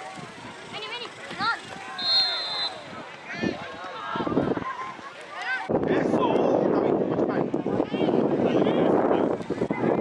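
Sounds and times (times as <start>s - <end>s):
players and spectators shouting: 0.0s - 6.3s
referee whistle blast: 2.0s - 2.8s.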